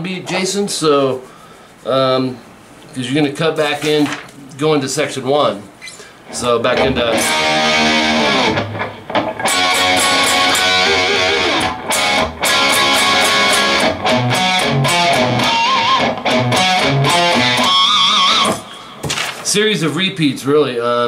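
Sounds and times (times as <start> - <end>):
electric guitar playing: 6.3 - 18.9.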